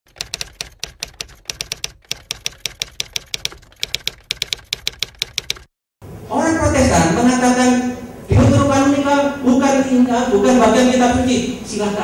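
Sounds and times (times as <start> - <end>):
typewriter key clicks: 0.1 - 5.7.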